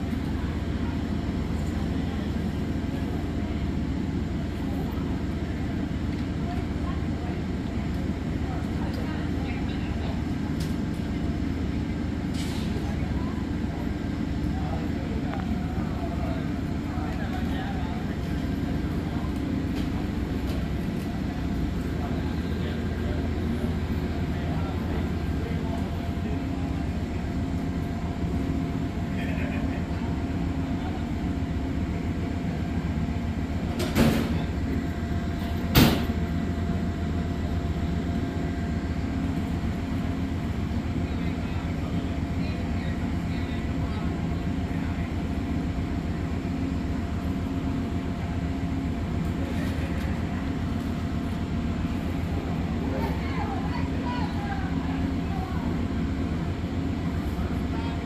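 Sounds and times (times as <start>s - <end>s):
train idling hum: 0.0s - 58.0s.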